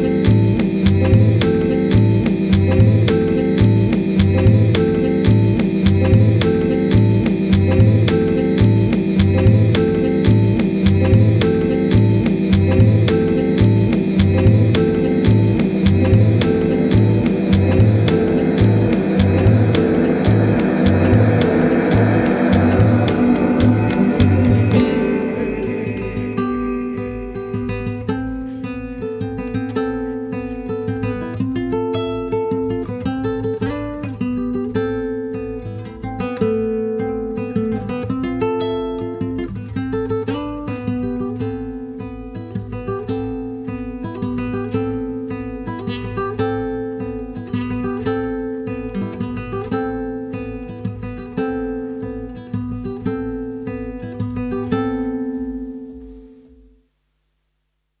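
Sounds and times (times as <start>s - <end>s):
plucked guitar: 0.0s - 56.8s
low bass pulse: 0.3s - 27.9s.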